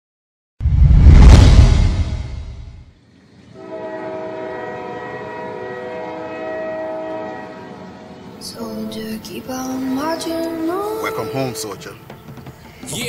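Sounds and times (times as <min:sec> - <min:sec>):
deep boom: 0:00.6 - 0:02.9
train air horn chord: 0:03.6 - 0:11.2.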